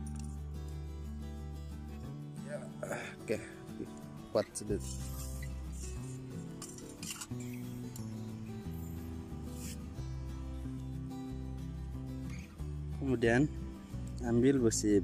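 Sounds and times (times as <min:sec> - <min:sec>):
music with held low notes: 0:00.0 - 0:15.0.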